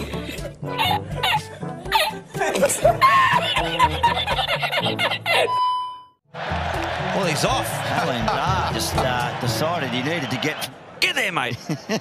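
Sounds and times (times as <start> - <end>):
background music: 0.0 - 5.6, 6.3 - 11.0
laughter: 0.0 - 5.6, 11.5 - 12.0
stadium crowd noise: 6.3 - 12.0.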